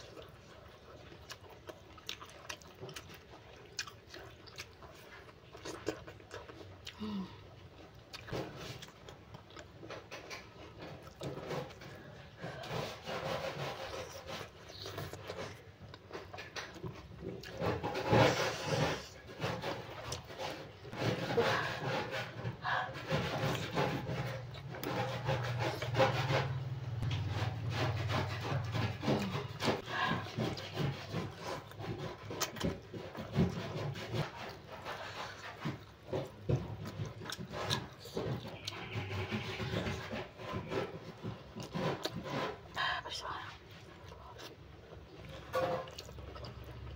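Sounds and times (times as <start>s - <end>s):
chewing and lip smacks: 0.0s - 7.0s.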